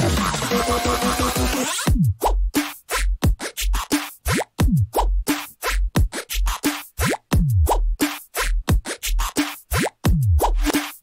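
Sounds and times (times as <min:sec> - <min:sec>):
electronic bass music: 0:00.0 - 0:11.0.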